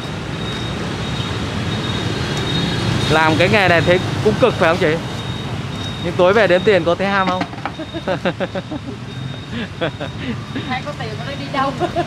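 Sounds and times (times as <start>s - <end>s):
street traffic hum: 0.0s - 12.0s
people talking: 3.1s - 5.0s, 6.0s - 7.5s, 10.6s - 12.0s
people laughing: 7.6s - 10.7s, 11.6s - 12.0s.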